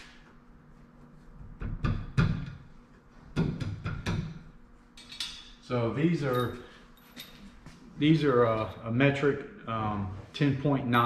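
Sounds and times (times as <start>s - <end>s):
metal knocks and clinks: 6.2s - 7.6s.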